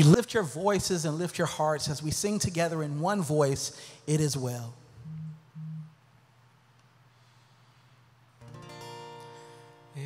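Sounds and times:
steady low tones: 4.8 - 6.6.

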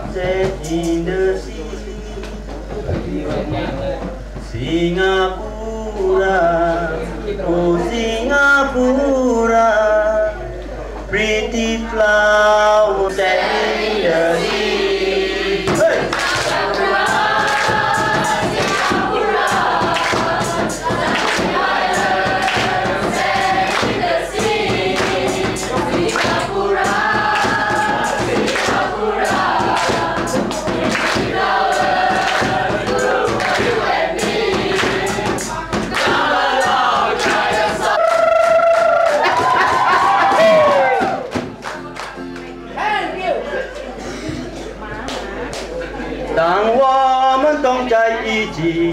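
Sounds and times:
young voices singing together: 11.4 - 42.7
hand claps: 15.7 - 42.5, 45.0 - 45.8
whoops and cheers: 38.0 - 41.4.

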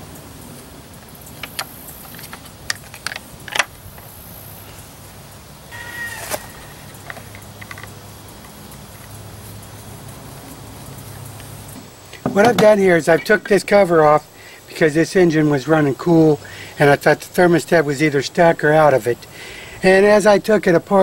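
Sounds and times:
short animal call: 5.7 - 7.1.

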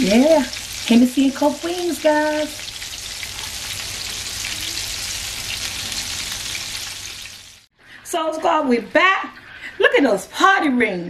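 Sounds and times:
oil sizzling in a skillet: 0.0 - 7.7.

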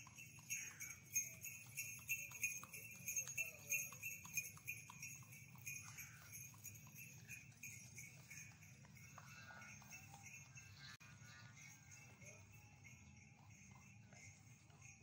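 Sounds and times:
harness bells jingling: 0.0 - 15.0
hooves clip-clopping: 0.0 - 15.0.

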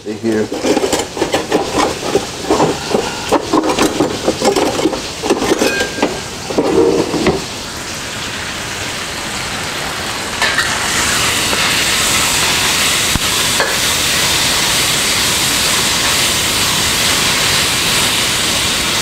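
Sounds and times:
chicken sizzling in a hot wok: 5.9 - 19.0.

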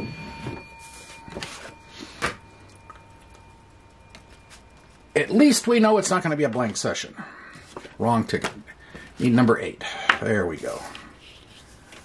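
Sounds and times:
faint ringing tone: 0.0 - 12.0.

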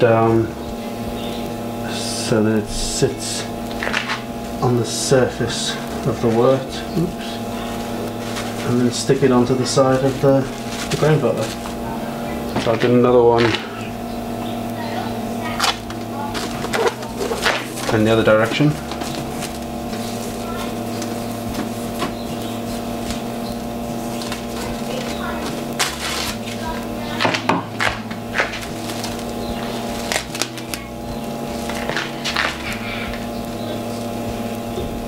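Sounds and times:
electrical hum: 0.0 - 35.0
cling film crinkling: 3.4 - 4.7, 5.6 - 35.0.

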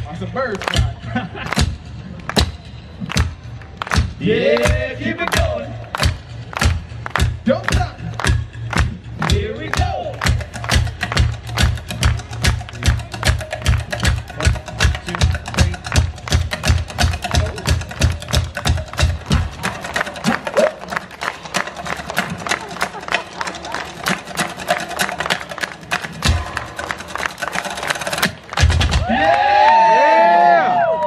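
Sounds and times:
thumping bass beat: 0.0 - 21.0, 28.2 - 29.3.

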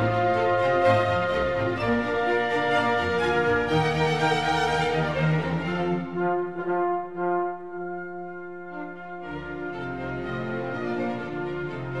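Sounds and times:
slow orchestral music: 0.0 - 12.0.

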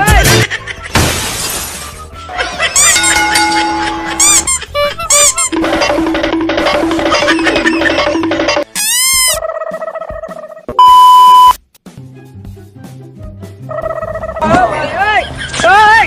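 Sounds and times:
loud single-tone beep: 10.8 - 11.6.

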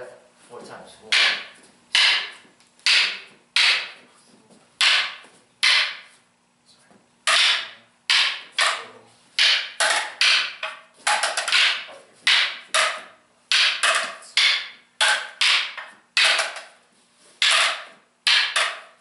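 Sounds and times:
practice sticks clacking: 1.0 - 6.2, 7.2 - 19.0.

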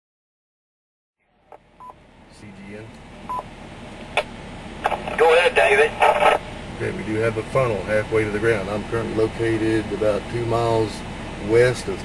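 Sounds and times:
short electronic beeps: 3.3 - 3.5
radio hiss: 4.2 - 7.0.

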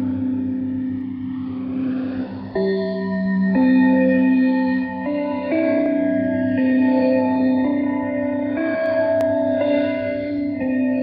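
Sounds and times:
slow ambient music: 0.0 - 11.0.

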